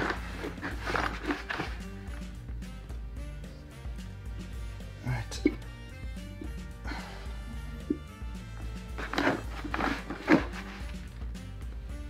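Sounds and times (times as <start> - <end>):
hand packing damp substrate: 0.0 - 2.4, 8.5 - 11.5
background music with held notes: 0.0 - 12.0.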